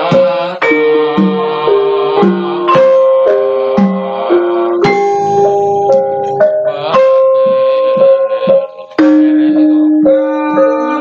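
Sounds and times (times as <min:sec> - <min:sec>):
gamelan metallophone and gong notes: 0:00.1 - 0:11.0.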